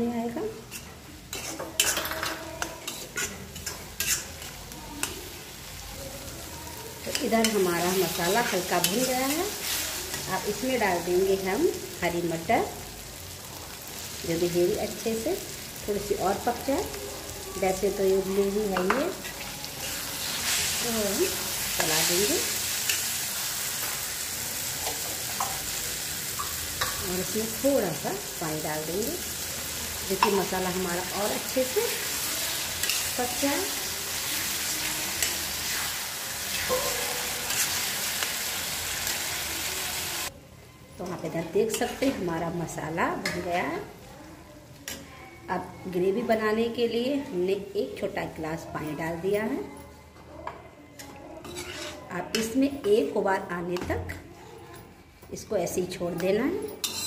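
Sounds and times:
masala sizzling: 0.0 - 50.0, 51.0 - 57.0
steel spatula scraping iron pan: 0.7 - 4.5, 51.4 - 52.1.

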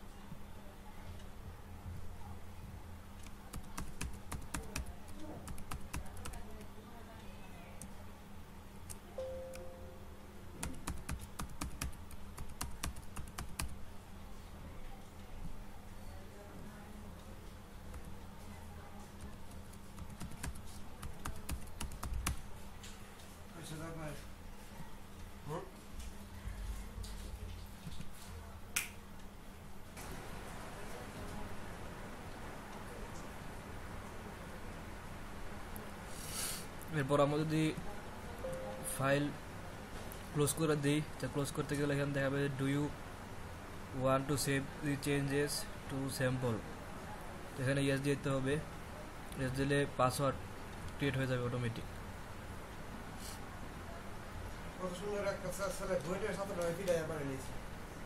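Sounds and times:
steady low hum: 0.0 - 36.1, 36.7 - 55.9
keyboard typing: 3.2 - 6.7, 10.6 - 13.8, 19.2 - 22.5.

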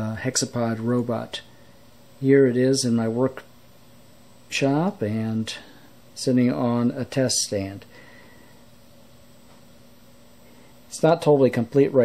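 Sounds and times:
faint low hum: 0.0 - 12.0
steady hiss: 0.0 - 12.0.

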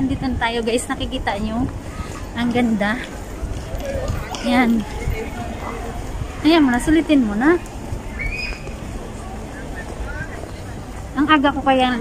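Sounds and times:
faint distant voices: 0.0 - 12.0
low steady city rumble: 0.0 - 12.0.

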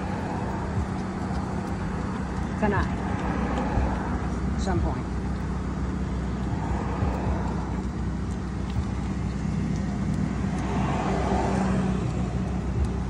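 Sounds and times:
car engine idling: 0.0 - 13.0.

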